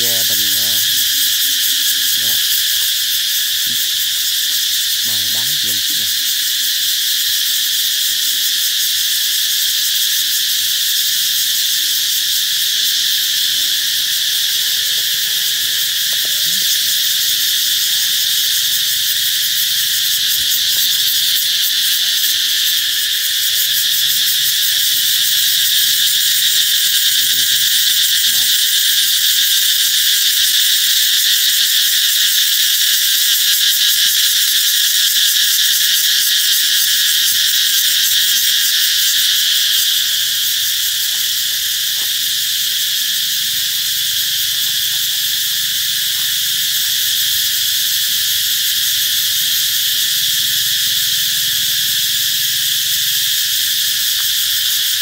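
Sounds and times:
cicadas buzzing: 0:00.0 - 0:55.0.

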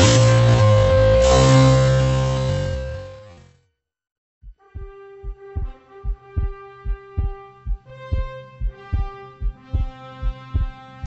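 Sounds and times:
heartbeat thumps: 0:04.4 - 0:11.0.

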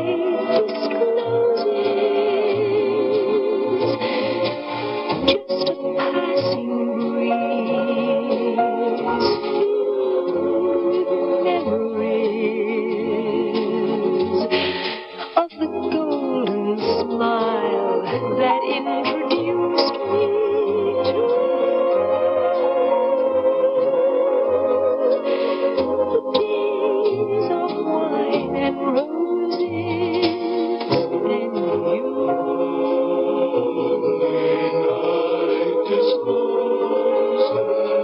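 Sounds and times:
instrumental accompaniment: 0:00.0 - 0:38.0
woman singing a ballad: 0:05.2 - 0:21.5, 0:26.1 - 0:32.3
woman singing a slow ballad: 0:15.4 - 0:21.1.

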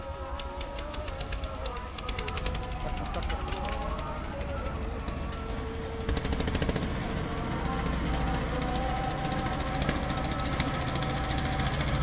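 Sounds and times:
boat diesel engine knocking: 0:00.5 - 0:12.0.

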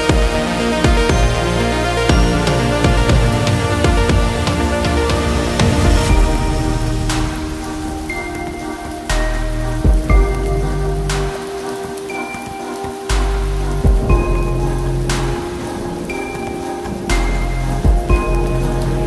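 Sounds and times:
rain falling: 0:00.0 - 0:19.0
slow music of sustained chords: 0:00.0 - 0:19.0.

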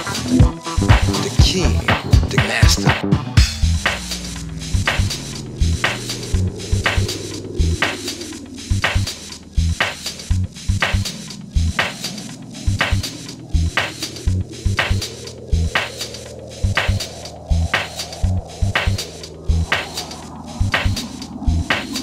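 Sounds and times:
punchy bass notes: 0:00.0 - 0:11.8, 0:12.7 - 0:15.8, 0:16.6 - 0:19.9, 0:20.6 - 0:21.7
sharp percussion hits: 0:00.0 - 0:22.0
filtered synth sweep: 0:03.0 - 0:22.0.

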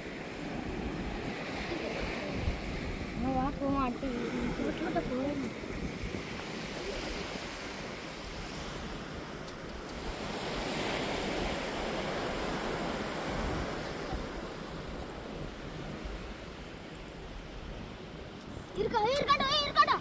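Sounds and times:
low wind rumble on microphone: 0:00.0 - 0:20.0
sea surf washing onto beach: 0:00.0 - 0:20.0.

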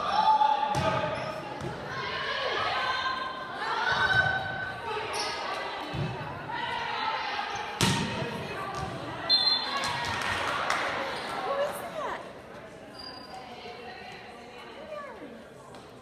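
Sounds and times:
echoing crowd hubbub: 0:00.0 - 0:16.0.

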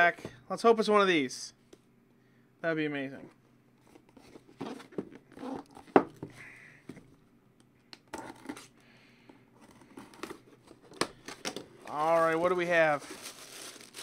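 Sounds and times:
cardboard rustling and scraping: 0:03.8 - 0:06.0, 0:11.7 - 0:14.0
cardboard and plastic tearing: 0:10.9 - 0:14.0.

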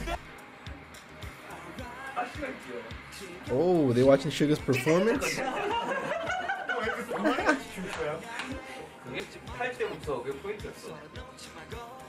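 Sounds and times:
men laughing: 0:00.0 - 0:00.3, 0:04.7 - 0:08.2
men talking: 0:01.6 - 0:11.6.

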